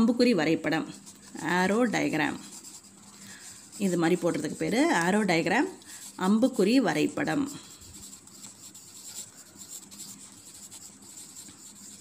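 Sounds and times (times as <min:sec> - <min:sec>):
pencil scratching on paper: 0:00.0 - 0:12.0.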